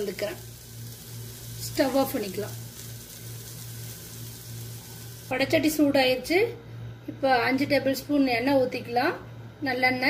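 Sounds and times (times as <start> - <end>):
food sizzling in a pan: 0.0 - 6.4
low steady hum: 0.0 - 10.0.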